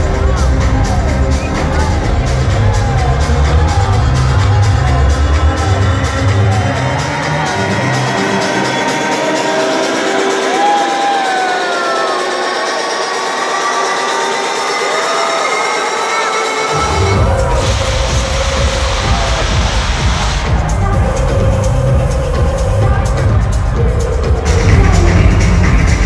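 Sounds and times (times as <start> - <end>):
electronic dance music: 0.0 - 26.0.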